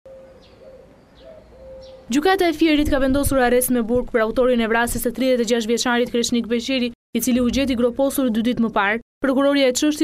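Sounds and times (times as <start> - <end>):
small bird chirping: 0.1 - 2.2.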